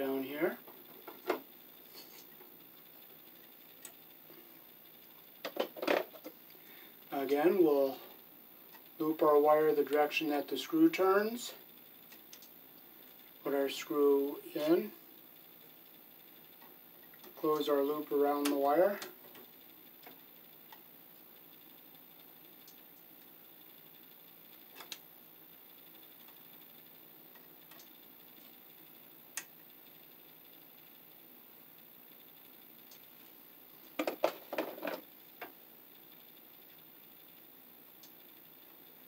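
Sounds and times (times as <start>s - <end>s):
clicks and knocks: 34.0s - 35.5s.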